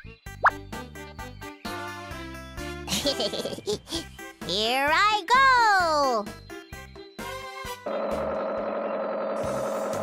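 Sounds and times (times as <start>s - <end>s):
cartoon propeller plane engine drone: 7.9s - 10.0s.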